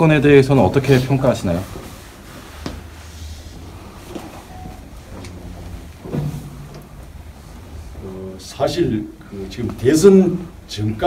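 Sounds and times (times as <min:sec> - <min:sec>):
low rumble of handling noise: 0:00.4 - 0:10.7.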